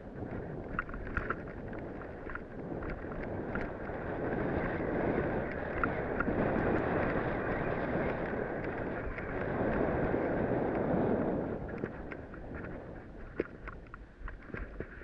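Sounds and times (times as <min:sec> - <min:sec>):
wind on microphone: 0:00.0 - 0:15.0.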